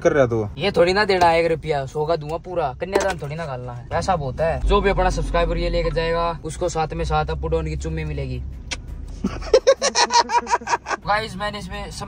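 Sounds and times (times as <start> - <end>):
sharp click: 8.6 - 8.9.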